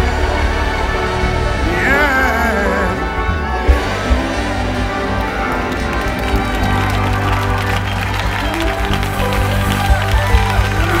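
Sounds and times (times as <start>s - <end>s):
choir singing with accompaniment: 0.0s - 8.8s
hand-clapping: 4.7s - 11.0s.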